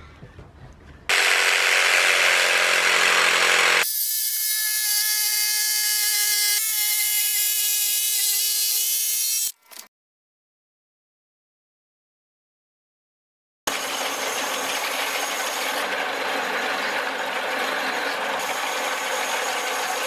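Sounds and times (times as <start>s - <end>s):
jigsaw cutting wood: 1.1s - 3.9s
jigsaw motor whine: 1.1s - 3.9s.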